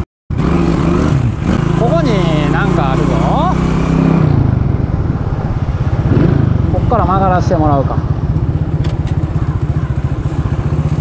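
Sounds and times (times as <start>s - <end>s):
man's voice: 1.8s - 3.6s
small motorcycle engine running: 5.8s - 11.0s.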